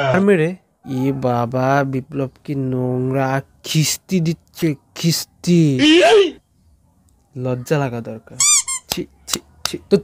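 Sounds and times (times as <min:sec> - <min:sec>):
man speaking: 0:00.0 - 0:06.4, 0:07.4 - 0:10.0
high-pitched squeaks: 0:08.4 - 0:09.0.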